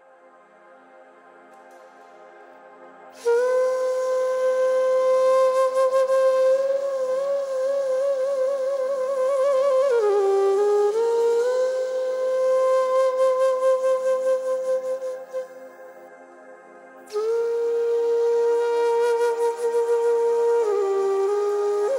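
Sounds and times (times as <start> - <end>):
soft sustained chord: 0.0 - 21.9
bamboo flute long notes: 3.0 - 21.9.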